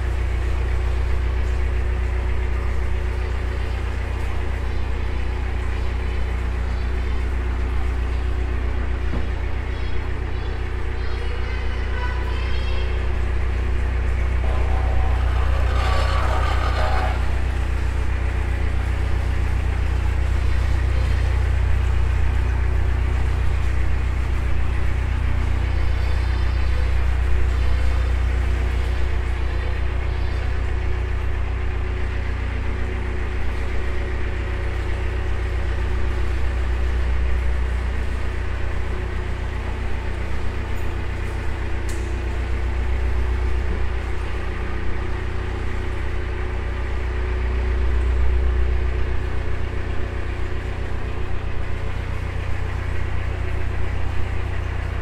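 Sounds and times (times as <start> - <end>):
diesel engine low hum: 0.0 - 55.0.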